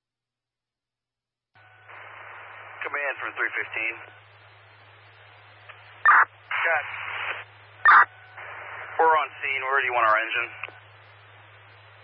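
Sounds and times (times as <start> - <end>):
low hum: 1.6 - 12.0
radio hiss: 1.8 - 12.0.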